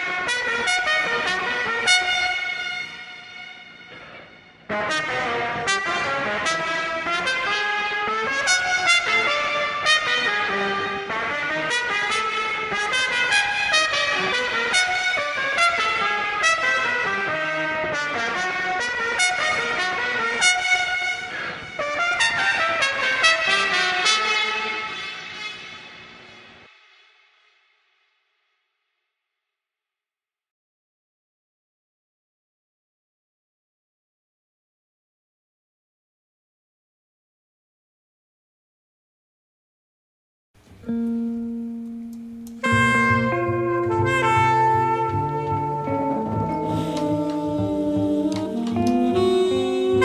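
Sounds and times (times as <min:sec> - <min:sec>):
muted trumpet melody: 0:00.0 - 0:04.0, 0:04.7 - 0:25.9, 0:40.9 - 0:50.0.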